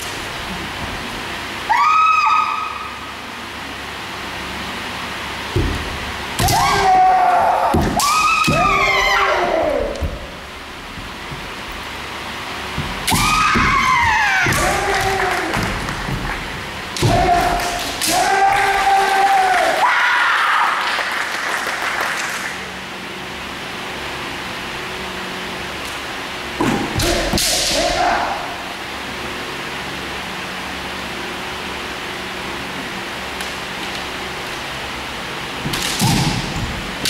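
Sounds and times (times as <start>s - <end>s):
fighters shouting: 6.4s - 10.4s, 13.0s - 15.9s, 17.0s - 20.7s, 26.8s - 28.6s.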